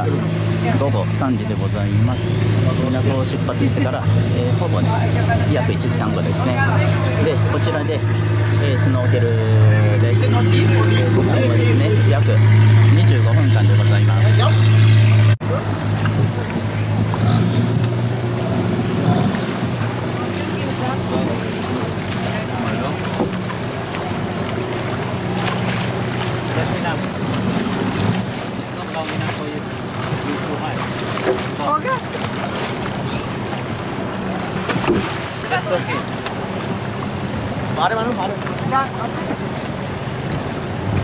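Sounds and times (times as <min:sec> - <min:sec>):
voices: 0:00.0 - 0:40.6
boat engine humming: 0:00.0 - 0:41.0
water splashing: 0:00.0 - 0:41.0.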